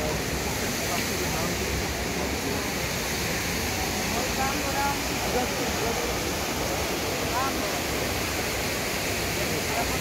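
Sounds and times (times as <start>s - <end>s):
faint crowd chatter: 0.0s - 10.0s
fountain water rushing: 0.0s - 10.0s.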